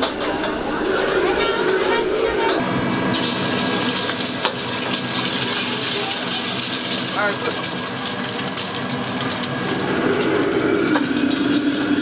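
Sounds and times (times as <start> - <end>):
crowd chatter on street: 0.0 - 8.9
egg sizzling in hot oil: 2.9 - 12.0.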